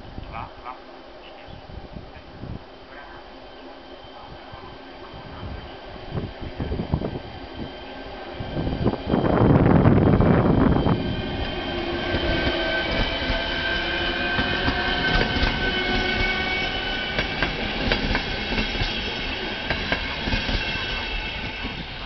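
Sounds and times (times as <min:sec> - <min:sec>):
electric train motor whining: 0:02.4 - 0:22.0.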